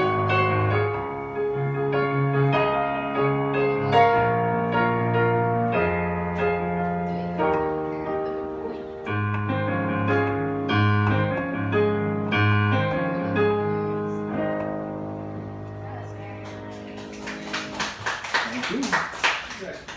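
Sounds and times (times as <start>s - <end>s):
digital piano chords: 0.0s - 19.7s
people clapping: 16.3s - 19.9s.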